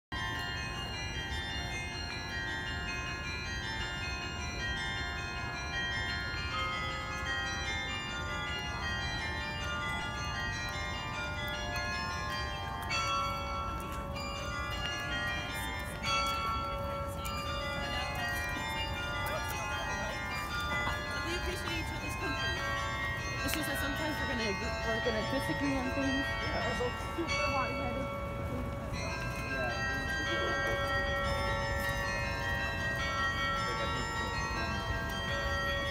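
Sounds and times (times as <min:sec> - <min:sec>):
carillon bells playing a tune: 0:00.2 - 0:35.9.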